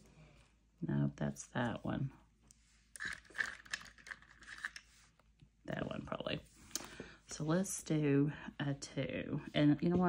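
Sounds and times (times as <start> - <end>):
pencils clicking and rustling: 2.9 - 5.0.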